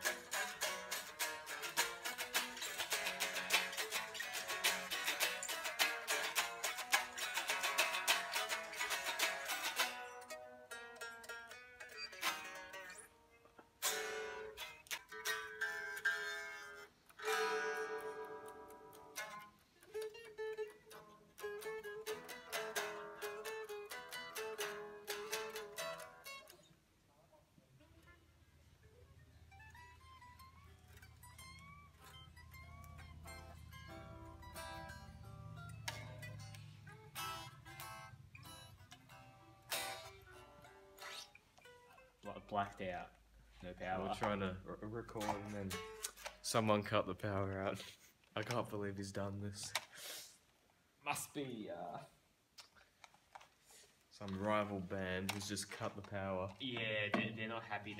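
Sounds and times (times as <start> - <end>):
electric guitars being tuned: 0.0 - 26.7, 27.8 - 50.1.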